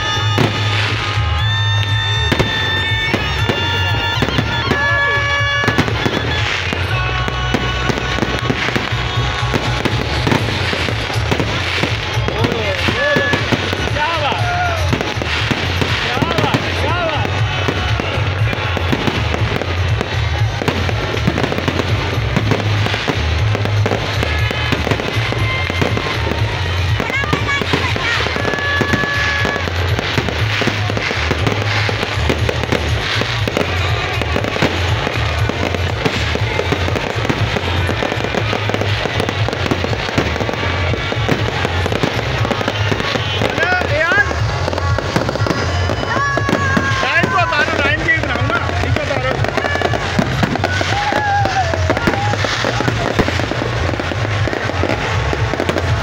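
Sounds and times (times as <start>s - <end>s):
crowd voices: 0.0s - 56.0s
fireworks bursting and crackling: 0.0s - 56.0s
loud music with heavy bass: 0.0s - 56.0s.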